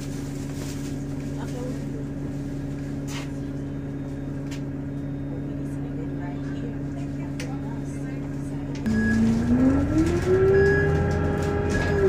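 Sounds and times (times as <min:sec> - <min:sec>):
bus engine idling and accelerating: 0:00.0 - 0:12.0.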